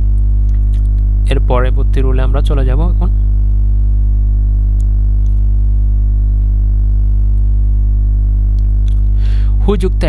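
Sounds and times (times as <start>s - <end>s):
loud low electrical hum: 0.0s - 10.0s.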